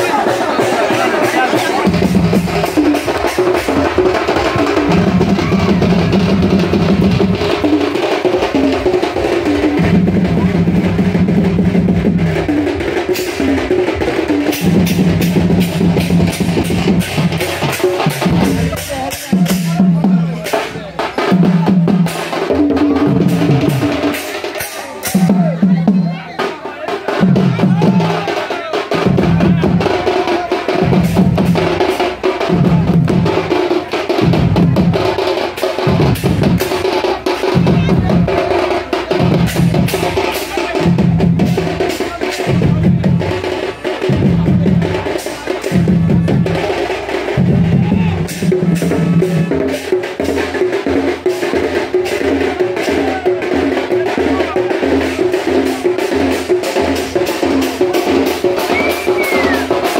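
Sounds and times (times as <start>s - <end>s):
band drumming fast beat: 0.0s - 59.9s.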